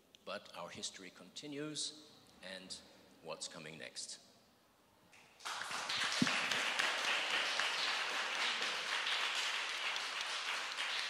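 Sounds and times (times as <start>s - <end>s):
audience applauding: 5.4s - 11.0s.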